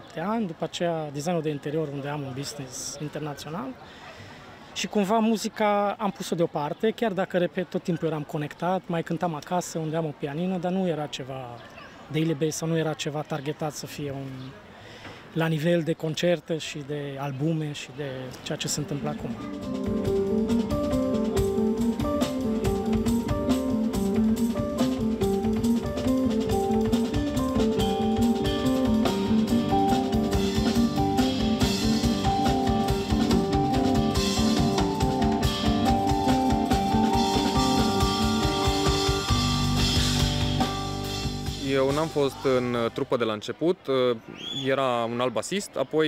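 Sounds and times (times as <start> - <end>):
keyboard lines: 18.4 - 42.9
drum-kit beat: 19.3 - 42.5
electric bass: 19.6 - 42.4.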